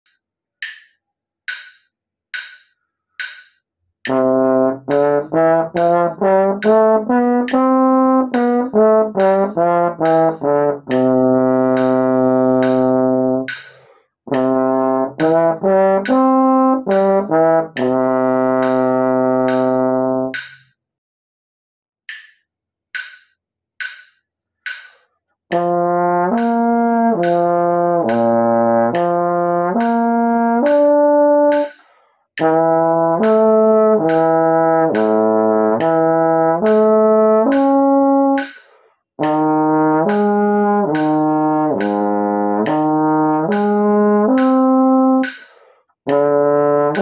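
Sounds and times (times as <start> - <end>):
metronome clicking: 0.1 - 20.8, 22.1 - 47.0
trombone playing scales: 4.1 - 13.6, 14.3 - 20.4, 25.5 - 31.7, 32.4 - 38.4, 39.2 - 45.4, 46.0 - 47.0
breath: 13.6 - 14.2, 24.9 - 25.2, 31.8 - 32.3, 38.6 - 39.1, 45.4 - 46.0.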